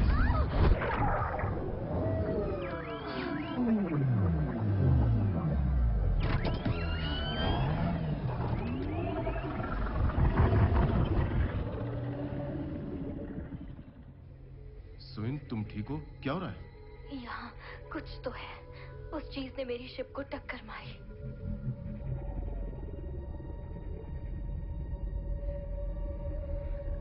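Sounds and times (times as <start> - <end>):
sliding groans and cries: 0.0 - 15.8
deep rumble: 0.0 - 27.0.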